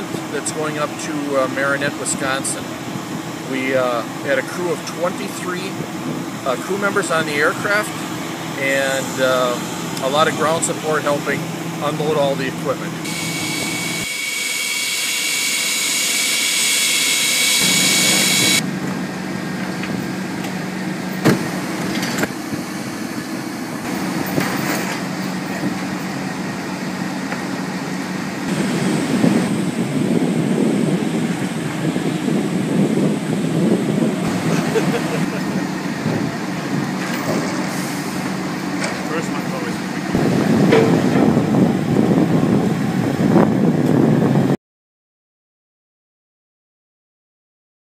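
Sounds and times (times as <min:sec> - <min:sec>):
high steady whine: 0:00.0 - 0:37.2
engine hum: 0:00.0 - 0:44.6.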